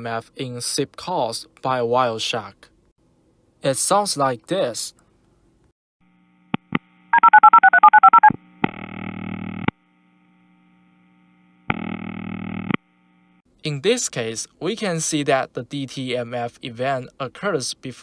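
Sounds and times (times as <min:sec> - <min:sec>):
phone ring signal: 0:07.2 - 0:08.3
two-tone dtmf beeps: 0:07.2 - 0:08.4.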